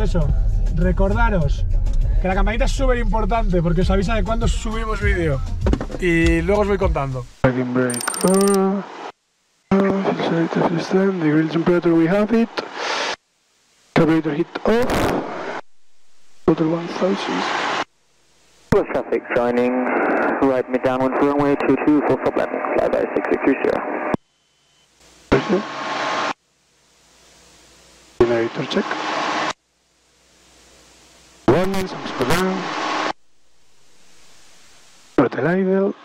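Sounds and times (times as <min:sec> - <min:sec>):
speech over headset intercom: 0:18.8 - 0:23.9.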